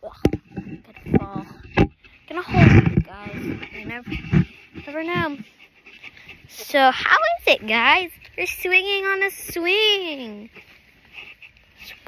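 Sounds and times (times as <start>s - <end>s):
girl speaking: 0.0s - 5.5s, 6.5s - 10.5s.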